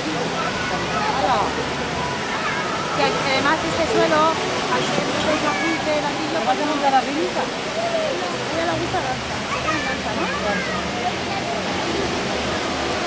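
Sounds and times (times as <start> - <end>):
fountain water splashing: 0.0 - 13.0
people talking: 0.0 - 13.0.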